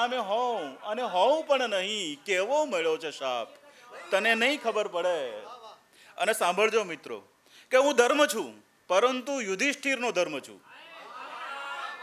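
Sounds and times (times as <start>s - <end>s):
murmur of voices: 3.3s - 5.8s.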